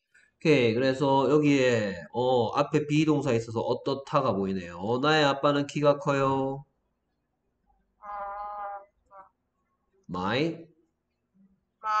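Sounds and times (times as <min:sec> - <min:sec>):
person saying uh: 0:08.0 - 0:09.3.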